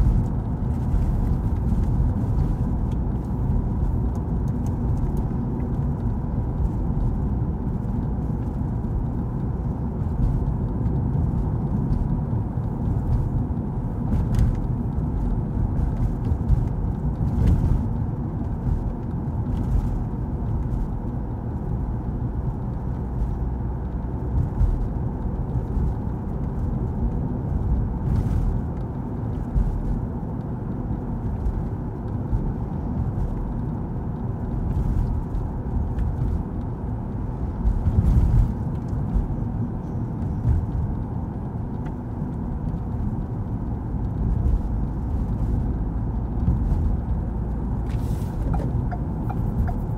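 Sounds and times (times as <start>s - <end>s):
car tyres and engine rumble: 0.0s - 49.9s.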